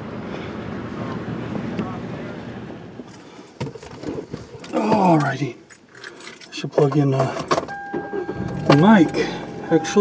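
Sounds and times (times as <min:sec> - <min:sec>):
wind: 0:00.0 - 0:10.0.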